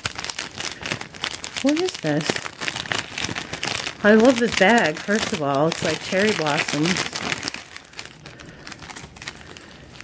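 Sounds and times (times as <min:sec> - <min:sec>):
gift wrap crinkling: 0:00.0 - 0:10.0.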